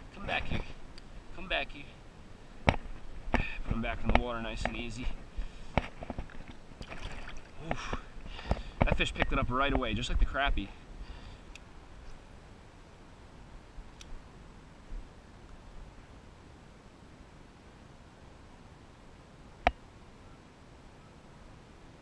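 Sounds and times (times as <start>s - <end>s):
outdoor background hiss: 0.0s - 22.0s.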